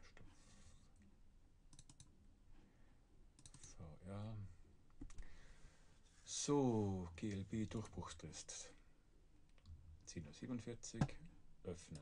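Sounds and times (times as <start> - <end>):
computer mouse clicks: 1.7 - 2.1, 3.4 - 3.8, 5.0 - 5.3.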